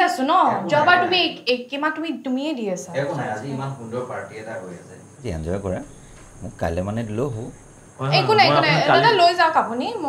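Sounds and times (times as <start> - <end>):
man speaking: 0.5 - 1.2, 3.0 - 9.2
crickets chirring: 2.8 - 10.0.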